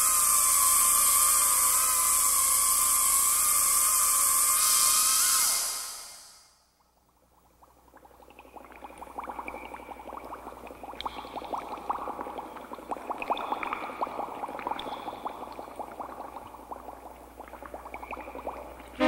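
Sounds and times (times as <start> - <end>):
underwater bubbling: 7.1 - 19.0.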